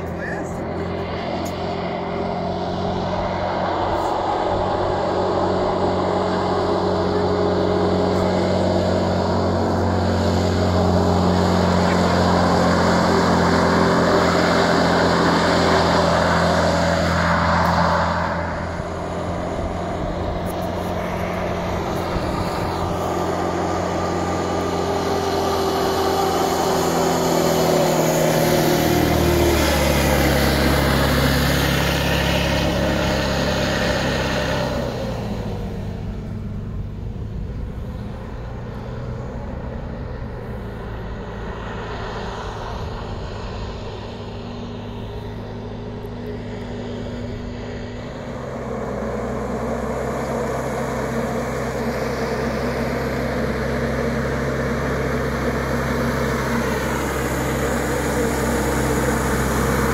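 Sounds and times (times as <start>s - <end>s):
hovercraft engine and propeller: 0.0s - 59.9s.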